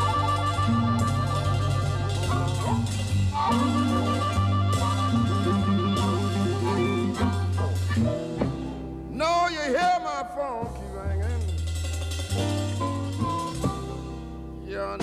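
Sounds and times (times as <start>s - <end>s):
harmonica wailing: 0.0s - 8.6s
electric guitar: 0.0s - 9.1s
bass line: 0.0s - 15.0s
drums: 0.0s - 15.0s.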